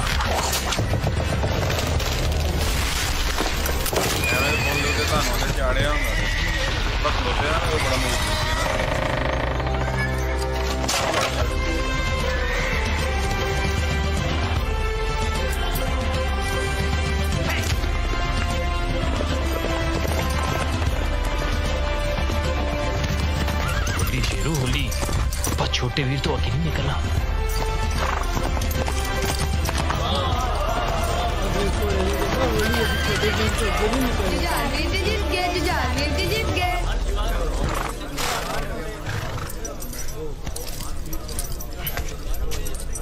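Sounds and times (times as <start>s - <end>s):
galloping hooves: 0.0s - 11.4s, 17.5s - 43.0s
dramatic background music: 0.0s - 38.0s
horses whinnying: 3.9s - 13.2s, 23.0s - 25.5s, 27.9s - 34.6s, 37.5s - 40.0s.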